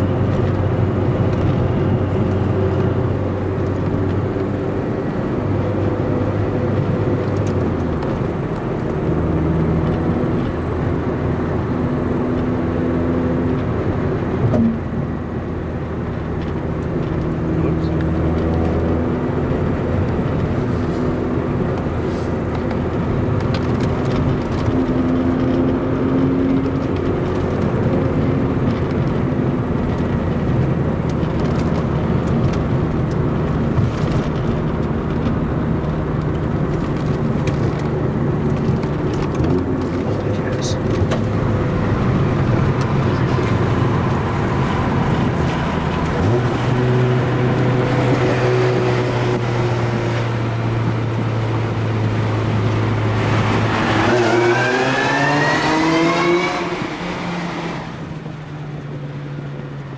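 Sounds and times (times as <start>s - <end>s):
car engine: 0.0s - 59.9s
road noise: 0.0s - 59.9s.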